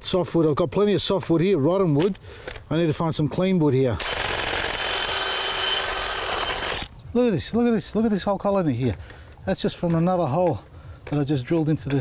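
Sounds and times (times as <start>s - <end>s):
cordless drill boring into wood: 4.0s - 6.9s.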